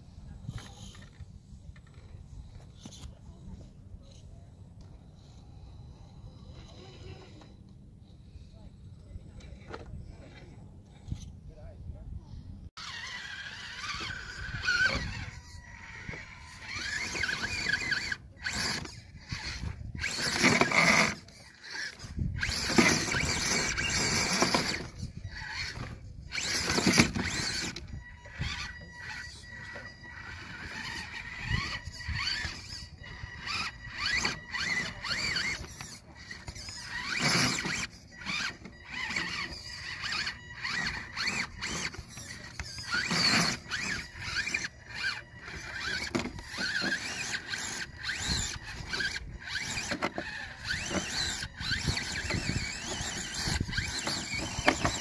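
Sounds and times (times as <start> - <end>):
electric motor whining: 12.8 - 55.0
tyres clicking and scraping on rock: 12.8 - 55.0.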